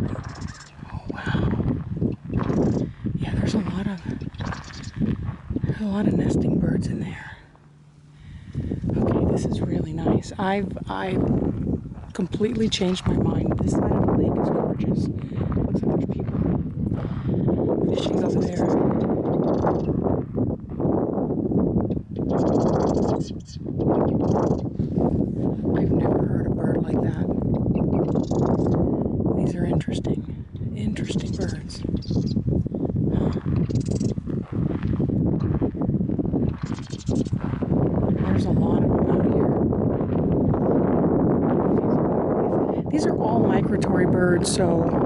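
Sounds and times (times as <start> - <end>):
birds harsh rattling calls: 0.0 - 5.6, 18.0 - 20.0, 22.0 - 24.9, 27.5 - 28.9, 31.1 - 32.6, 33.2 - 34.5, 36.5 - 37.7
wind on microphone: 0.0 - 45.0.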